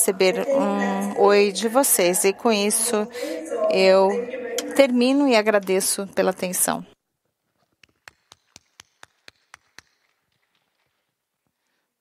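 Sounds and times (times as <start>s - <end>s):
person clapping faintly: 7.6s - 11.0s.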